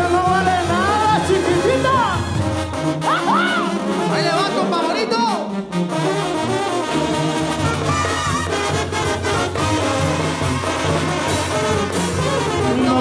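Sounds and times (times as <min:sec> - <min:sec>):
brass band playing: 0:00.0 - 0:13.0.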